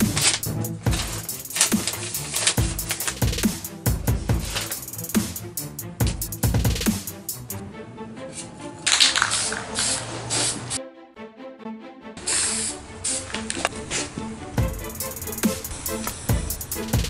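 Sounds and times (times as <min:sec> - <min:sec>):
aerosol can spraying: 0:00.0 - 0:07.2, 0:08.9 - 0:10.8, 0:12.2 - 0:13.5, 0:14.6 - 0:17.0
background music with beat: 0:00.0 - 0:07.8, 0:14.2 - 0:17.0.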